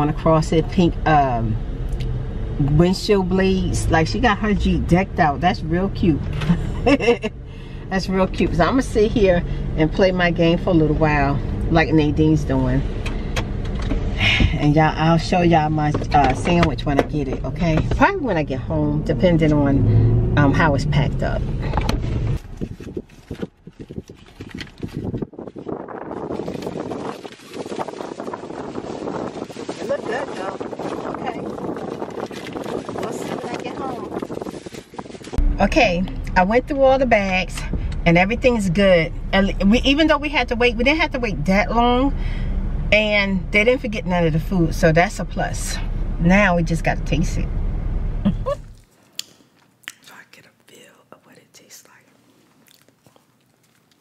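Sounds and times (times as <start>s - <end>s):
paper wrapping crinkles and clicks: 22.4s - 28.4s
paper and foil rustling: 22.4s - 35.4s.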